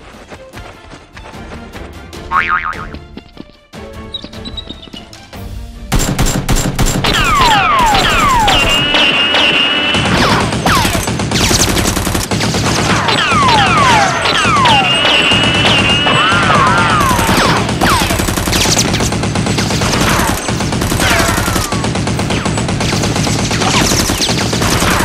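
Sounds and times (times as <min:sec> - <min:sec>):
action background music: 0:00.0 - 0:25.0.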